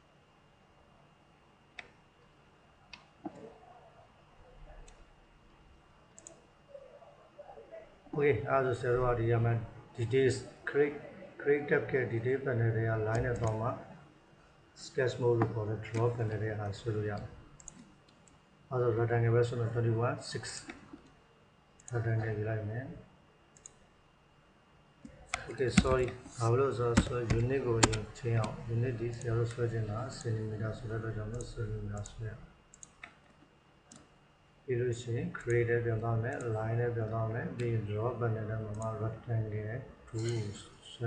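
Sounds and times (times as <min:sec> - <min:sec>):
computer mouse clicks: 0:06.2 - 0:06.4, 0:13.1 - 0:13.6, 0:17.1 - 0:18.4, 0:23.6 - 0:23.8, 0:27.0 - 0:29.6, 0:31.3 - 0:34.1.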